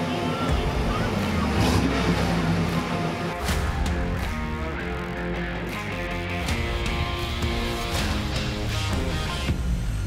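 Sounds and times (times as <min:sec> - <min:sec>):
car engine running at low revs: 0:00.0 - 0:10.0
music playing: 0:00.0 - 0:10.0.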